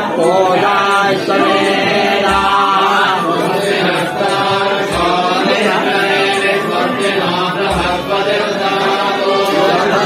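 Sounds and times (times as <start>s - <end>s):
mantras chanted: 0.0s - 10.0s.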